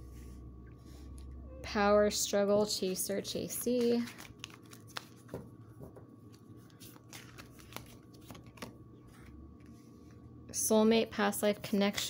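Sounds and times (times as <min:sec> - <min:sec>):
cards being shuffled: 0:02.8 - 0:09.8.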